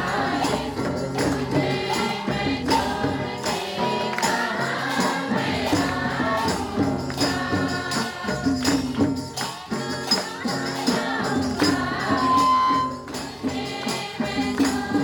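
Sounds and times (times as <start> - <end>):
percussion beat: 0.0 - 15.0
women singing in chorus: 0.0 - 15.0
hand claps: 0.5 - 15.0.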